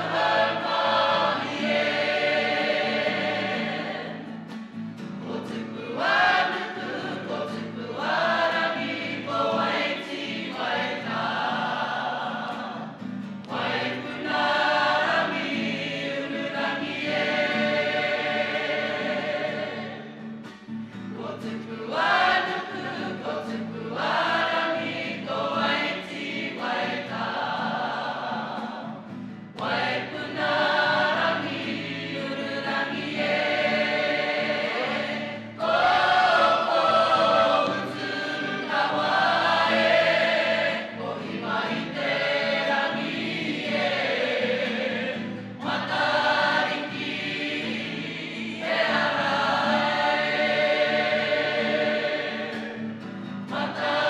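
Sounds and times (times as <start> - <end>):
group singing together: 0.0 - 54.0.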